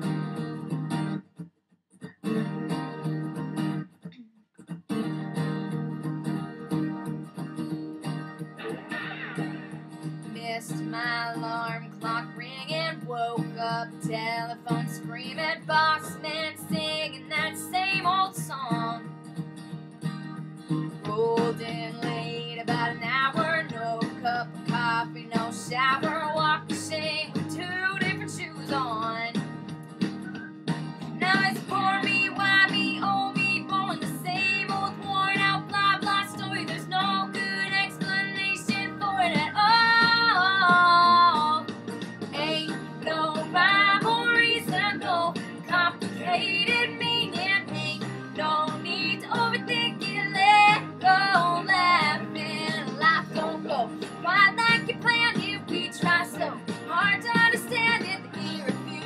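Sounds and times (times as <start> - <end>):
strummed acoustic guitar: 0.0 - 59.0
woman singing: 10.2 - 19.1, 21.0 - 29.4, 31.2 - 41.7, 42.3 - 59.0.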